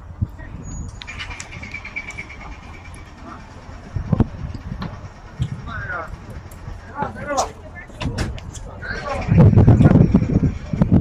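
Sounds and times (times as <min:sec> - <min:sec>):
low outdoor background: 0:00.0 - 0:11.0
people talking: 0:00.2 - 0:00.8, 0:05.4 - 0:11.0.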